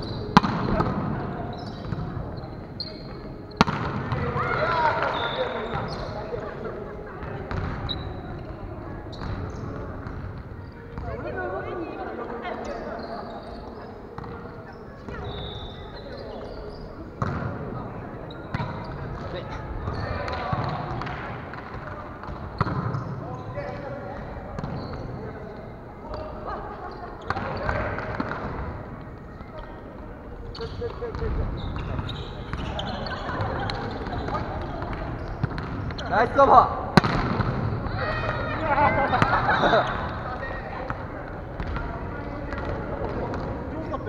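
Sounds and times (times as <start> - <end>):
players calling and chatting: 0.0 - 44.0.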